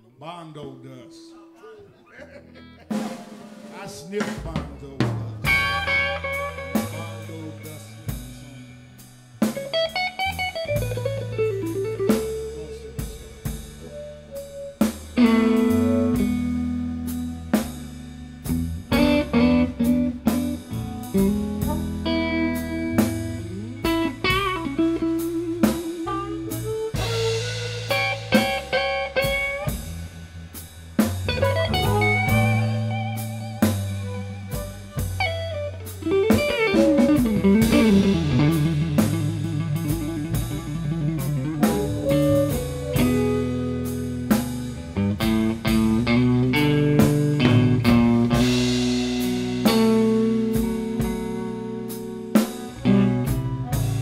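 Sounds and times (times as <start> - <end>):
live blues band playing: 2.4 - 54.0
lead electric guitar bending notes: 5.1 - 54.0.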